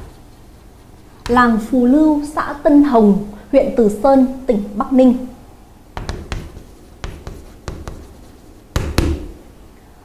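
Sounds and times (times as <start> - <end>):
pen tapping and scratching: 1.2 - 1.6, 6.0 - 9.3.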